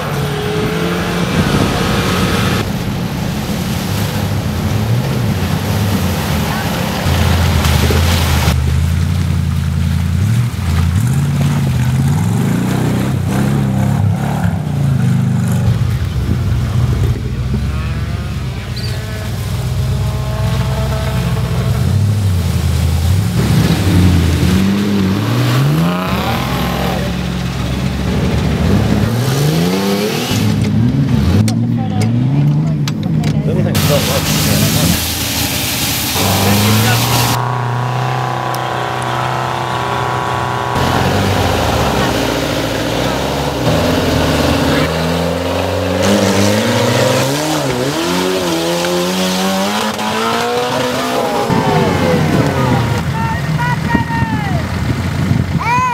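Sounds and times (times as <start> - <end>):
truck engines revving: 0.0 - 55.9.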